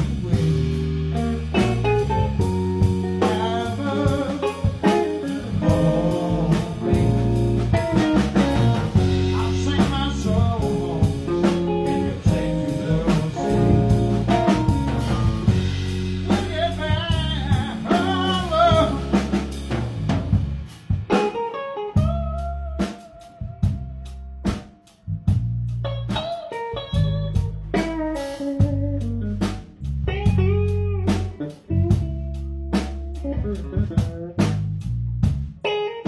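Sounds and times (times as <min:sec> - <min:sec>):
electric guitar lead lines: 0:00.0 - 0:34.6, 0:35.6 - 0:36.0
bass guitar: 0:00.0 - 0:36.0
drum kit: 0:00.0 - 0:36.0.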